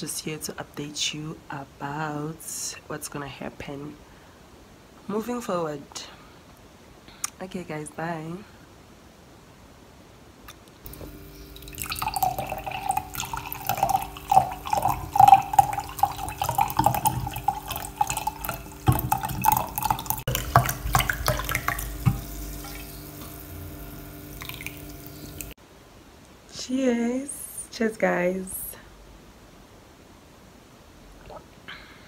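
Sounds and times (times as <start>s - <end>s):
drink glugging from bottle: 10.9s - 22.8s
drink fizzing in glass: 10.9s - 23.4s, 24.4s - 25.6s.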